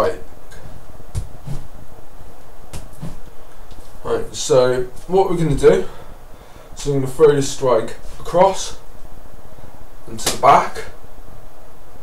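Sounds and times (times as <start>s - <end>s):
steady background hiss: 0.0s - 12.0s
nunchaku swishes: 1.2s - 1.7s.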